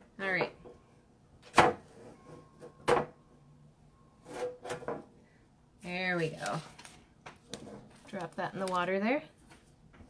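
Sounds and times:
soft rustling handling noises: 0:06.1 - 0:10.0.

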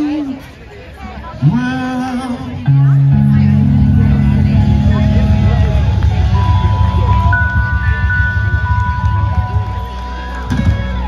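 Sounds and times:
people talking: 0:00.0 - 0:11.0
live band music: 0:03.0 - 0:11.0.

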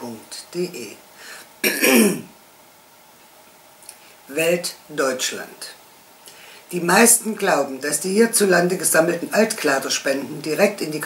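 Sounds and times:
woman clearing her throat: 0:01.6 - 0:02.3.

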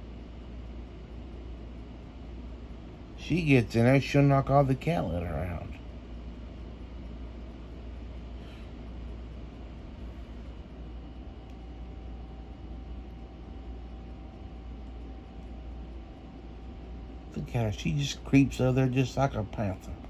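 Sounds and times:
faint steady whine: 0:00.0 - 0:20.0
low indoor hum: 0:00.0 - 0:20.0.

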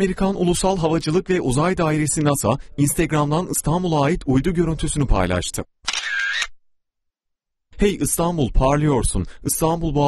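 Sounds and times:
camera shutter: 0:05.8 - 0:06.6.

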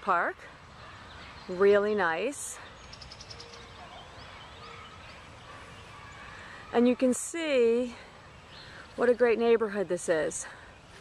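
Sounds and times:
distant bird chirps: 0:00.3 - 0:11.0.

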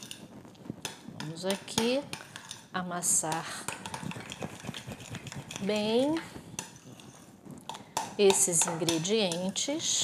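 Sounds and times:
spoon scraping glass bowl: 0:01.2 - 0:07.4.

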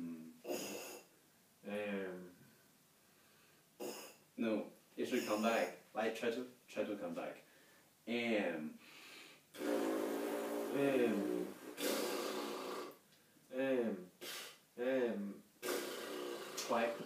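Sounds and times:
person humming: 0:09.6 - 0:13.0, 0:15.0 - 0:17.0.

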